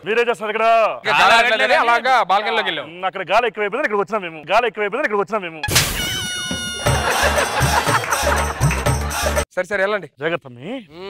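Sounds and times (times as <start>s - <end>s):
comic tone sound effect: 5.6s - 7.9s
upbeat music with thumping beat: 5.7s - 9.4s.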